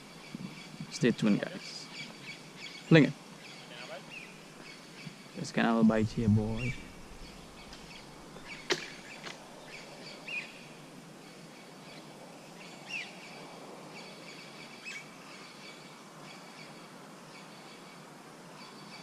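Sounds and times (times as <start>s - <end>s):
bird chirps: 0.0s - 13.4s
faint background hiss: 0.0s - 19.0s.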